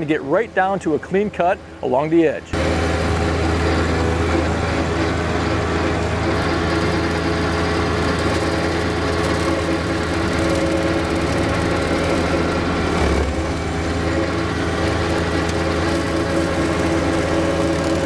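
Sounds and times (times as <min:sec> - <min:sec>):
tractor diesel engine under load: 0:00.0 - 0:18.0
rotary cutter cutting grass: 0:02.6 - 0:18.0.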